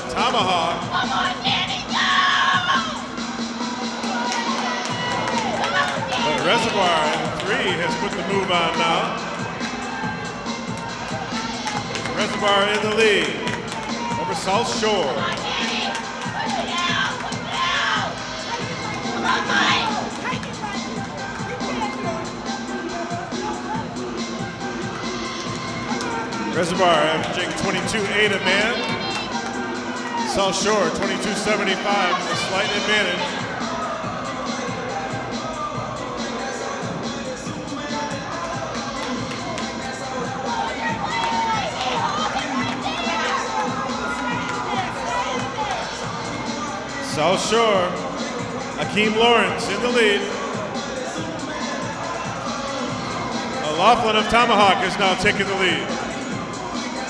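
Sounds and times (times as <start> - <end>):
crowd shouting and cheering: 0.0 - 57.0.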